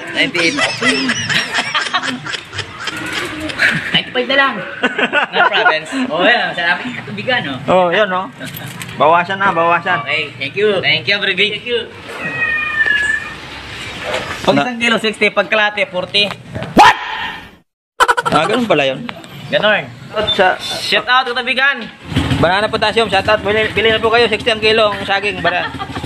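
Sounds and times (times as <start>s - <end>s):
man speaking: 0.0s - 1.3s, 18.2s - 21.6s
people chuckling: 0.0s - 6.1s, 18.0s - 18.7s, 25.2s - 26.0s
cat meowing: 12.1s - 13.5s.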